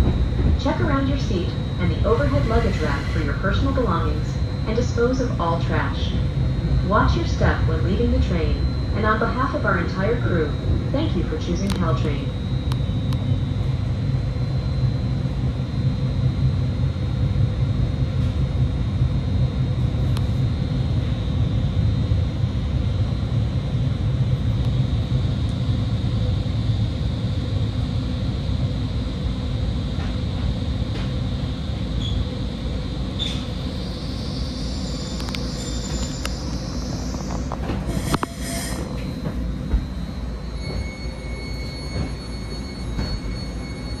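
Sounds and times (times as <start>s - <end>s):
steady high whine: 0.0s - 44.0s
train running rumble: 0.0s - 44.0s.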